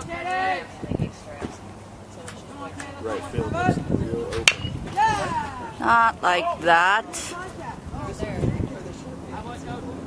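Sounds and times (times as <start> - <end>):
metal bat striking ball: 4.4 - 4.7.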